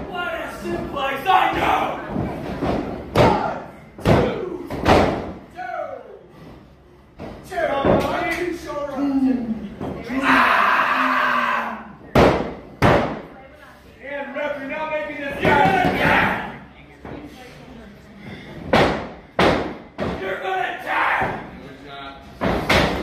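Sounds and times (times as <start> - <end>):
people shouting: 0.1 - 2.1, 10.0 - 12.0, 20.2 - 21.5.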